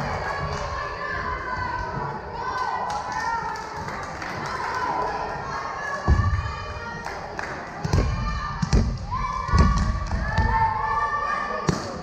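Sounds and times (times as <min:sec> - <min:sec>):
volleyball bouncing on gym floor: 0:07.8 - 0:10.6.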